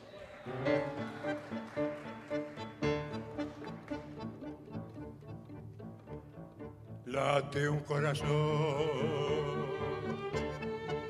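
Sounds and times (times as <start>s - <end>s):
live tango ensemble playing: 0.4s - 11.0s.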